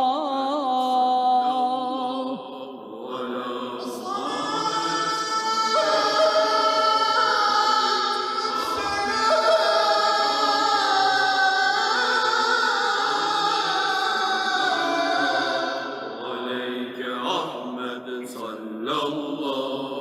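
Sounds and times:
voices singing religious chant: 0:00.0 - 0:20.0.

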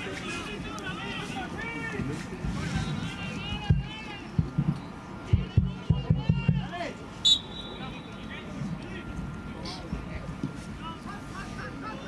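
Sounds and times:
voices calling out: 0:00.0 - 0:12.0
referee's whistle blast: 0:07.2 - 0:08.2.

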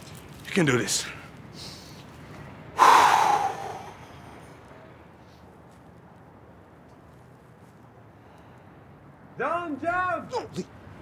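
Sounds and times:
loud sharp exhale: 0:02.8 - 0:04.3.

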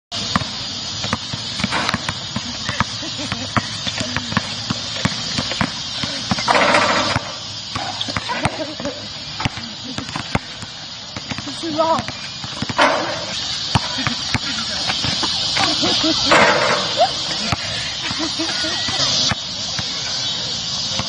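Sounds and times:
background hiss: 0:00.1 - 0:21.0
basketball bouncing on hard court: 0:00.2 - 0:17.7
ball clattering on hoop: 0:01.1 - 0:02.8, 0:03.9 - 0:08.6, 0:12.5 - 0:17.6.

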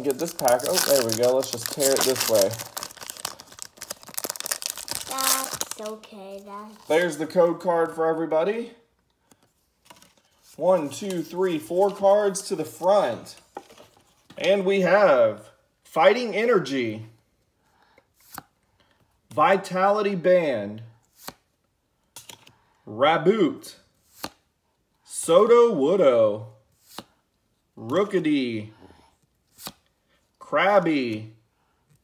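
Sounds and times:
foil wrapper crinkling and tearing: 0:00.0 - 0:06.1.

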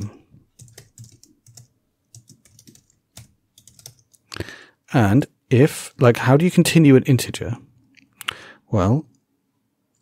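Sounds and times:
computer keyboard typing: 0:00.0 - 0:04.2.

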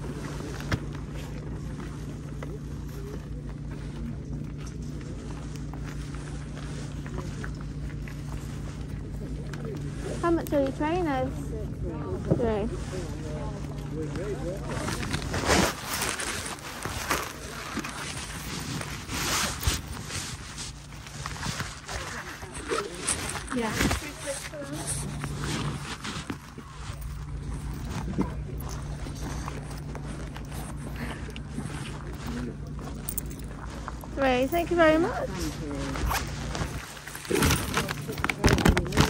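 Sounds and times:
constant low hum: 0:00.0 - 0:39.0
faint distant voices: 0:00.0 - 0:39.0
low outdoor rumble: 0:00.0 - 0:39.0
jacket fabric rustling on microphone: 0:12.2 - 0:39.0.

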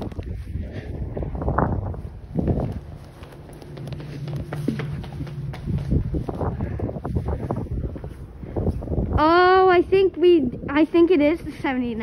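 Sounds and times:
footsteps on concrete: 0:00.0 - 0:09.2
low steady hum: 0:00.0 - 0:12.0
wind buffeting microphone: 0:00.0 - 0:12.0.

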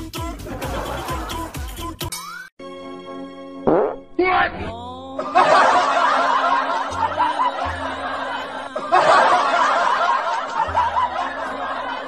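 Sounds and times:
background music: 0:00.0 - 0:12.0
laughter from many voices: 0:00.5 - 0:01.6, 0:05.2 - 0:12.0.

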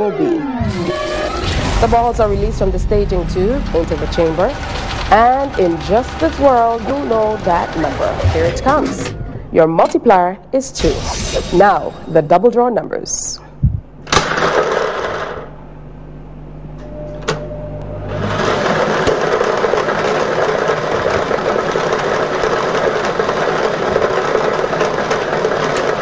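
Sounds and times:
machine hum: 0:00.0 - 0:26.0
balls clattering in a chamber: 0:18.3 - 0:26.0.

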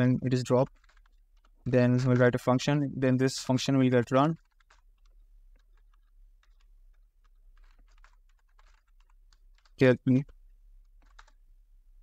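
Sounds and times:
computer keyboard typing: 0:00.0 - 0:12.0.

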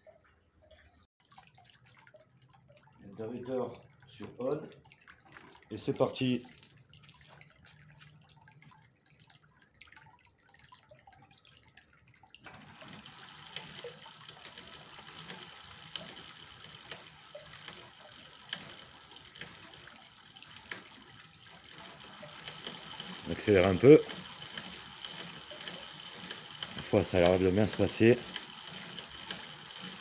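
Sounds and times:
bicycle chain ticking: 0:12.5 - 0:30.0
electric motor whirring: 0:21.7 - 0:30.0.

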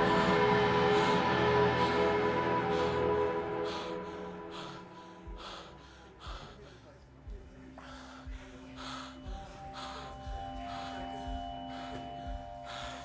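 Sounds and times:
music of long held notes: 0:00.0 - 0:13.0.

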